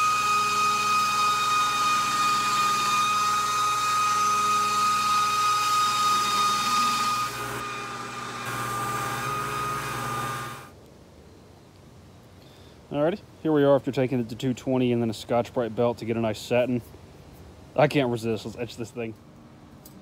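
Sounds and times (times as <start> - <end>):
belt grinder whining: 0.0 - 10.7.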